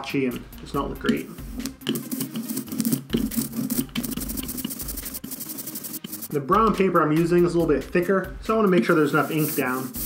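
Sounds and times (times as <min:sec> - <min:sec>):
ink roller crackling through ink: 0:00.3 - 0:06.4, 0:08.7 - 0:10.0.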